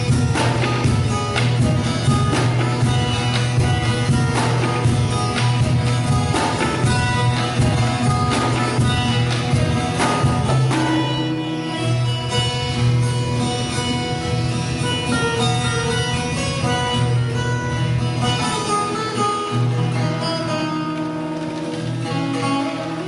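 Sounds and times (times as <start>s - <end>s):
tabla drumming: 0.0s - 13.4s
acoustic guitar: 0.0s - 23.0s
veena plucked melody: 0.0s - 23.0s.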